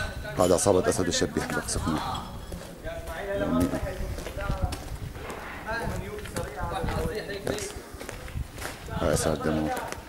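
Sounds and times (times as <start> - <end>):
hurried footsteps on pavement: 1.4 - 10.0.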